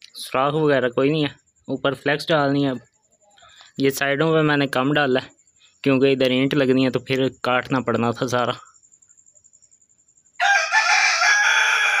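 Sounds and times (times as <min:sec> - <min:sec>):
rooster crowing: 0:10.4 - 0:12.0.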